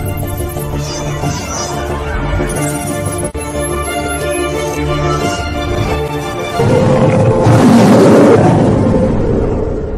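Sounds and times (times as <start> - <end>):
tiger roaring: 6.6 - 9.2.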